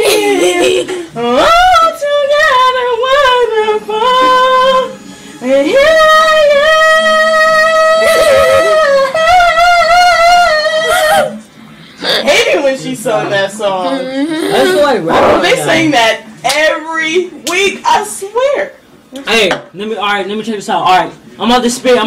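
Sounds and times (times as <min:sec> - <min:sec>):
woman singing a cappella: 0:00.2 - 0:11.4.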